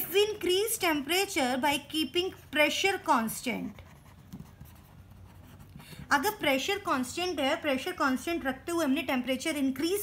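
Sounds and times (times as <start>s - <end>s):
pen writing on paper: 3.5s - 6.2s.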